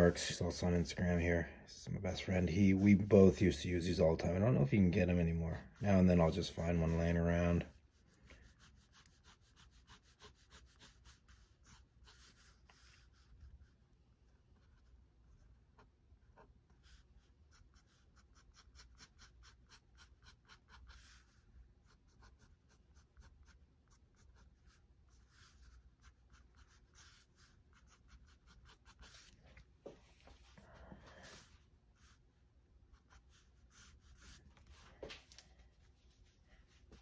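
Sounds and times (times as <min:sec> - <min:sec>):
pen scratching on paper: 0:05.0 - 0:29.4, 0:32.9 - 0:34.8.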